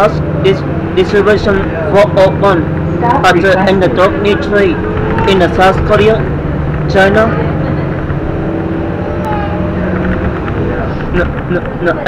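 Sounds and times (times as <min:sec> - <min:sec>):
bus engine and road noise: 0:00.0 - 0:12.0.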